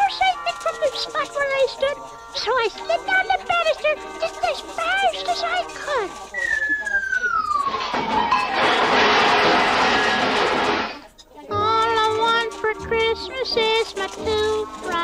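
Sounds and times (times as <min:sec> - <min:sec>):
high pitch-bending voices: 0:00.0 - 0:08.6
falling whistle-like tone: 0:06.3 - 0:08.6.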